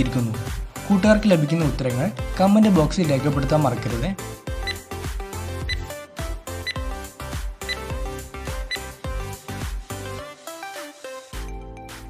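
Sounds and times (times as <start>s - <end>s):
background music with quick beat: 0.0s - 12.0s.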